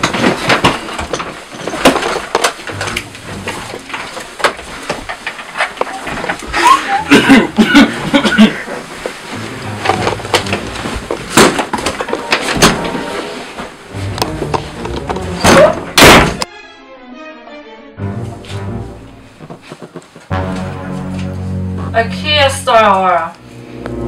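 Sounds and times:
people scuffling: 0.0 - 16.0, 19.3 - 21.7
background music: 9.3 - 11.0, 12.0 - 19.5, 20.3 - 24.0.

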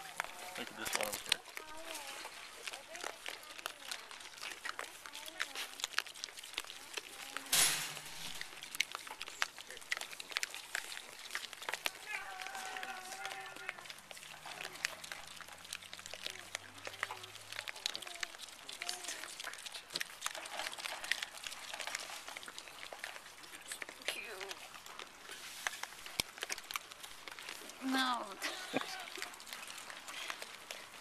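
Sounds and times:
pigs rooting in dirt: 0.0 - 31.0
faint animal or voice sounds: 11.9 - 15.4.

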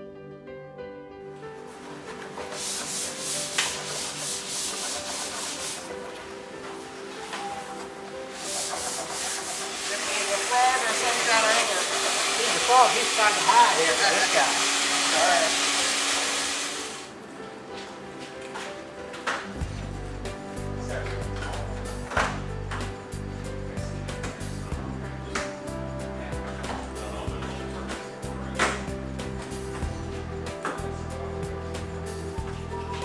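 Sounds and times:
hand tool scraping on glass: 2.5 - 5.9, 8.3 - 14.3.

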